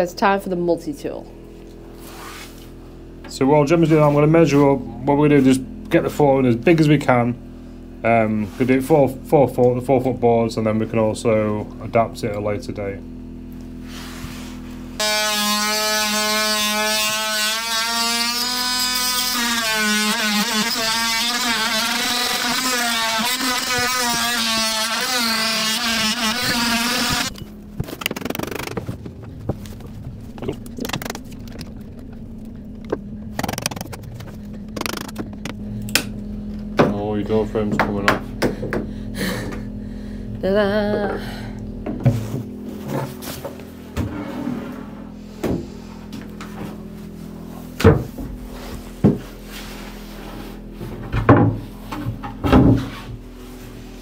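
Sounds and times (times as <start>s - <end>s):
oscillating multi-tool buzzing: 15.0s - 29.0s, 29.8s - 36.7s.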